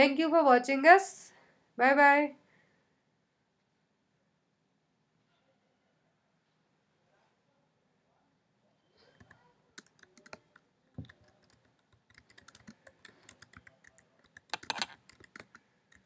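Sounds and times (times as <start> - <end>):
typing on computer keyboard: 9.2 - 16.0.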